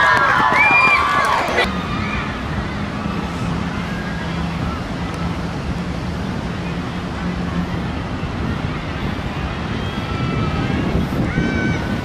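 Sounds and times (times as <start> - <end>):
wind on microphone: 0.0 - 12.0
faint distant voices: 1.4 - 12.0.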